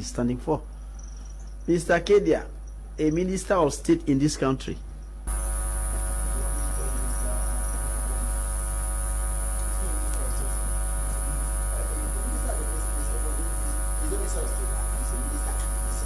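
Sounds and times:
electrical mains hum: 0:00.0 - 0:16.0
high hiss: 0:05.3 - 0:16.0
faint voice: 0:09.7 - 0:16.0.

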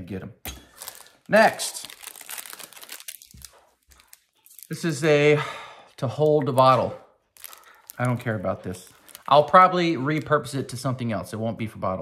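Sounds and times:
plastic packaging crinkling: 0:00.7 - 0:05.0, 0:06.5 - 0:10.8.

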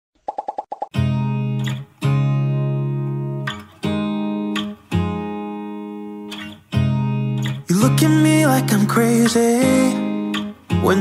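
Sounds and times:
acoustic guitar chords: 0:00.9 - 0:11.0.

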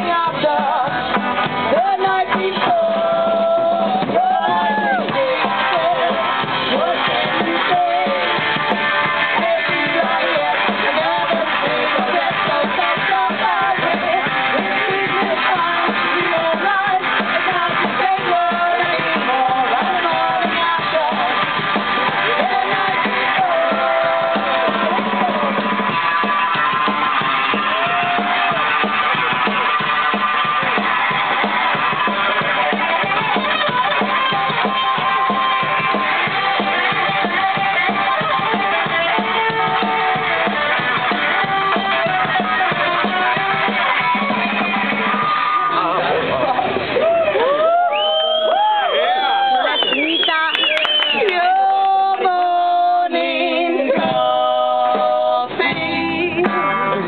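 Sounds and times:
women singing: 0:00.0 - 0:26.0, 0:50.0 - 0:57.0
drum kit: 0:00.0 - 0:57.0
electric guitar: 0:00.0 - 0:57.0.

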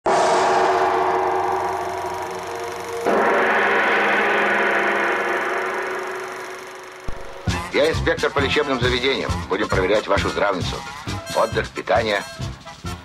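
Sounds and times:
gong strikes ringing: 0:00.1 - 0:09.4.

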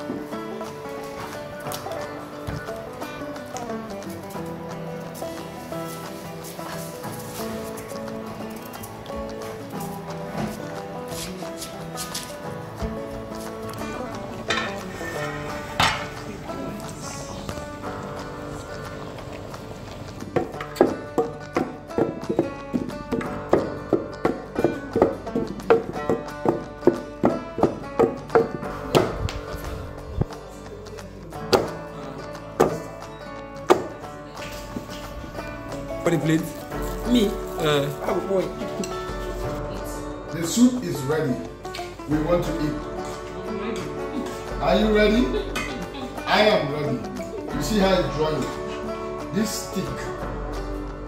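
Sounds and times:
background music: 0:00.0 - 0:51.0
pestle pounding in wooden mortar: 0:20.3 - 0:30.2, 0:31.5 - 0:31.8, 0:33.6 - 0:34.0.

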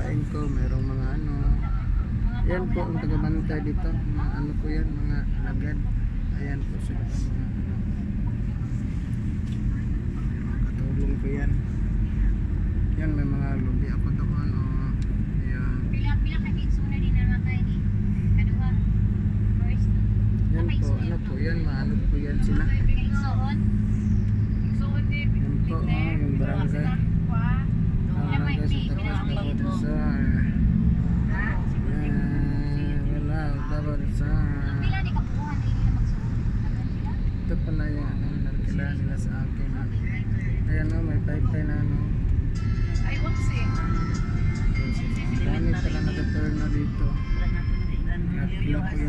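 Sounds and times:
people talking: 0:00.0 - 0:07.8, 0:09.7 - 0:11.6, 0:13.0 - 0:17.8, 0:18.4 - 0:18.9, 0:20.5 - 0:23.6, 0:24.8 - 0:30.6, 0:31.3 - 0:42.1, 0:43.0 - 0:43.9, 0:44.8 - 0:49.0
vehicle engine drone and road noise: 0:00.0 - 0:49.0.

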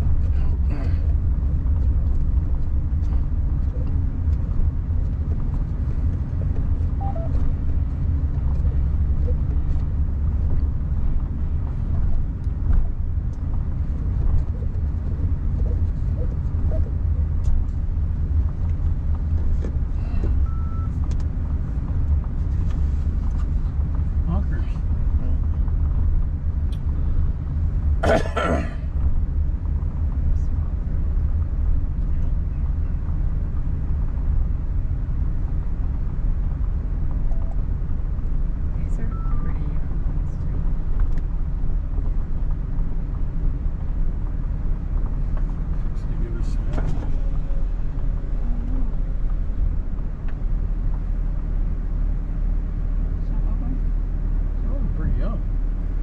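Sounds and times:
car driving rumble: 0:00.0 - 0:56.0.

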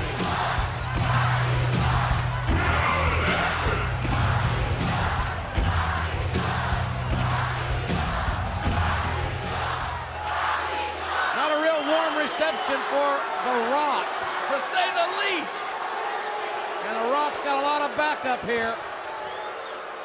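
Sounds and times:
loud arena crowd: 0:00.0 - 0:20.0.

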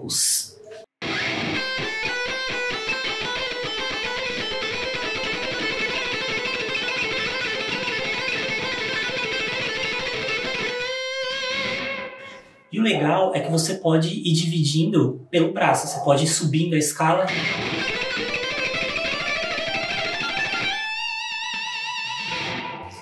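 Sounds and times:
electric guitar fast picking: 0:01.0 - 0:12.4, 0:17.3 - 0:23.0.

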